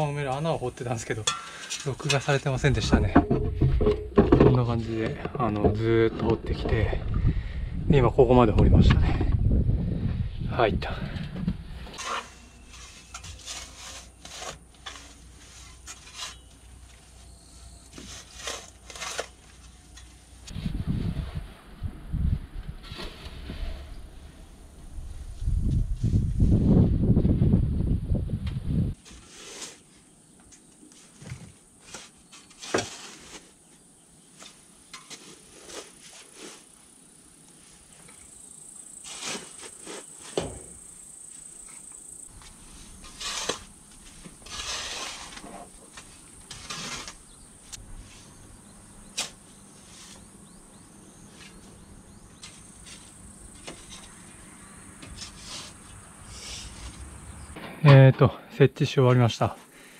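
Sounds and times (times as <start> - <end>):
shovel scraping and thudding in soil: 11.8 - 17.1, 17.9 - 21.2, 22.8 - 24.0, 28.9 - 30.0, 30.9 - 33.6, 34.4 - 36.8, 38.9 - 40.9, 42.3 - 48.4, 49.0 - 50.6, 52.4 - 54.2, 55.0 - 58.1.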